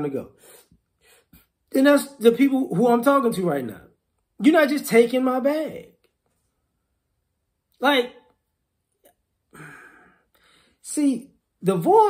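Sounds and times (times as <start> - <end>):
man speaking: 0.0 - 0.4, 1.7 - 6.0, 7.8 - 8.3, 10.8 - 12.0
man scoffing exhale: 9.5 - 10.8.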